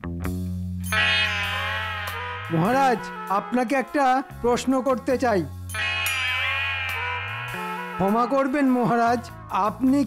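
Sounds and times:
held chord over low drone: 0:00.9 - 0:04.5, 0:05.7 - 0:09.5
wavering high note: 0:00.9 - 0:04.5, 0:05.7 - 0:08.9.

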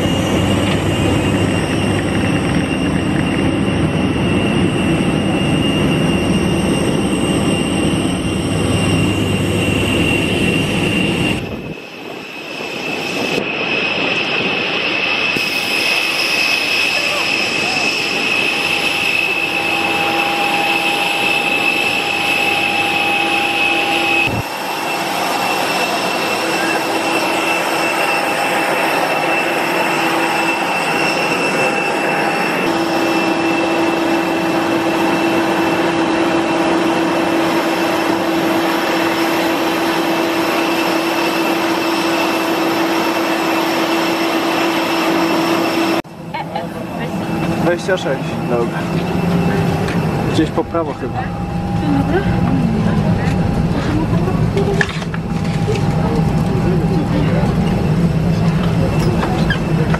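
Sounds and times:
jet airliner whine: 0:00.0 - 0:59.9.

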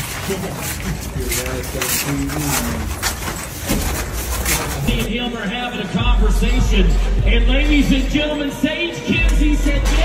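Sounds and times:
knocks and clatter: 0:00.0 - 0:05.1
people talking: 0:00.1 - 0:03.0, 0:04.4 - 0:10.0.

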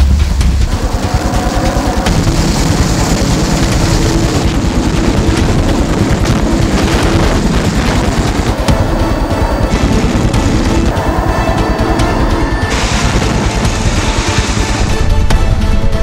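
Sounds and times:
helicopter rotor chopping: 0:00.0 - 0:15.9
turbine whine: 0:00.0 - 0:16.0.

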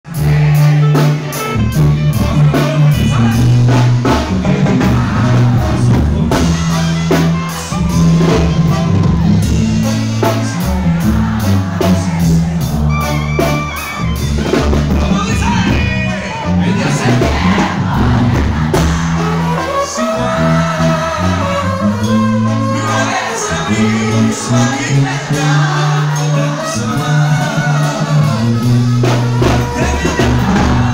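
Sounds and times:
drums: 0:00.0 - 0:30.9
tuba bass line: 0:00.1 - 0:30.9
voices singing: 0:00.1 - 0:30.9
clarinets and trumpets: 0:06.4 - 0:17.3, 0:18.9 - 0:30.9.

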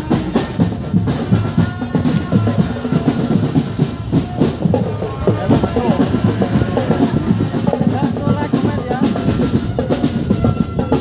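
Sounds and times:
marching band drums: 0:00.0 - 0:11.0.

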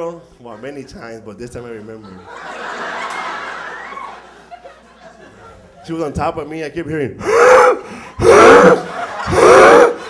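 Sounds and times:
man gasping and wheezing: 0:07.2 - 0:08.4.

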